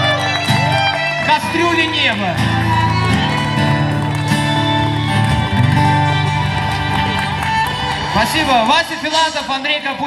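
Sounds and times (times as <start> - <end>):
acoustic guitar strumming: 0.0 - 8.4
violin playing: 0.0 - 9.5.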